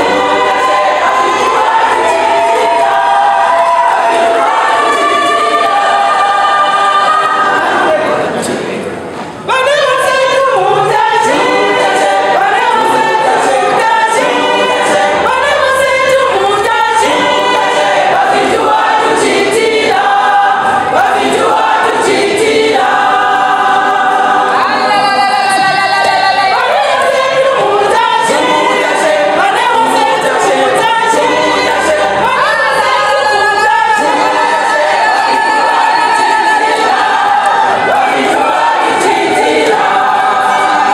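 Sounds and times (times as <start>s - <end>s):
women's choir singing gospel: 0.0s - 40.9s.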